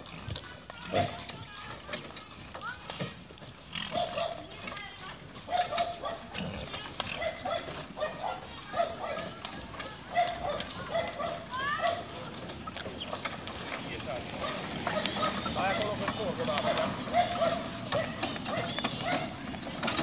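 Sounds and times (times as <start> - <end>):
horse cart knocking and rattling: 0.0 - 20.0
voices: 0.0 - 20.0
dog barking: 3.9 - 4.5, 5.5 - 6.4, 7.1 - 9.3, 10.1 - 12.2, 14.4 - 15.8, 16.5 - 19.4.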